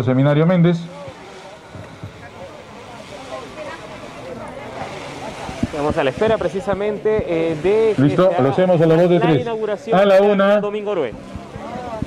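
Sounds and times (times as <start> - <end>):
faint voices talking: 0.0 - 12.0
steady outdoor noise: 0.0 - 12.0.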